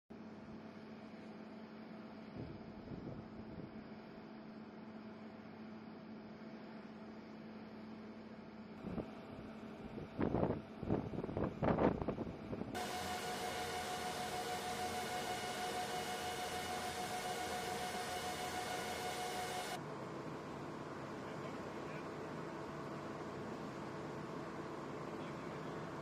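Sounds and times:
aircraft cabin engine rush: 12.6 - 19.8.

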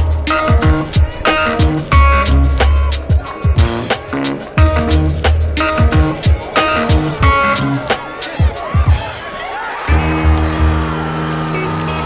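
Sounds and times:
held chords: 0.0 - 9.0
deep kick drums: 0.0 - 9.1.

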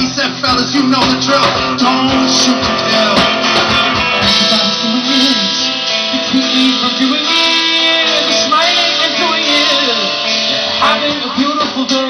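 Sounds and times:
guitar: 0.0 - 12.0
live band playing: 0.0 - 12.0.

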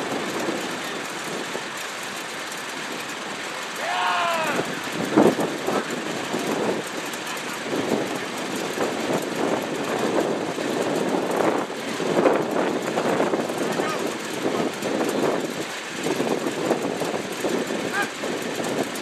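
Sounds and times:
outdoor background noise: 0.0 - 19.0
indistinct voices: 3.8 - 4.8.

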